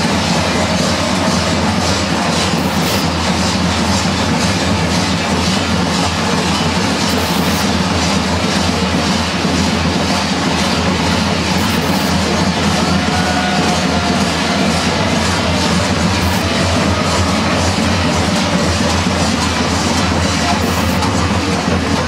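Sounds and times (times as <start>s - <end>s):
large bells clanging: 0.0s - 22.0s.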